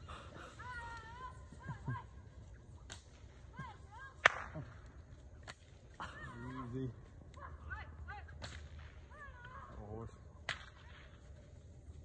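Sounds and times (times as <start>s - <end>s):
bullwhip cracking: 2.8s - 3.5s, 4.1s - 5.8s.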